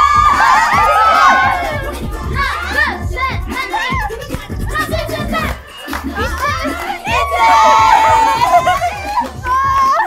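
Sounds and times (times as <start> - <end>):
young women shrieking and cheering: 0.0 - 5.5, 6.1 - 10.0
dance-pop music with heavy bass: 0.0 - 10.0.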